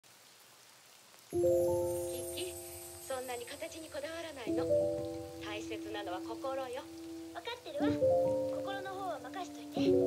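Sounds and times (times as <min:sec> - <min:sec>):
faint steady hiss: 0:00.0 - 0:10.0
piano chord ringing: 0:01.4 - 0:10.0.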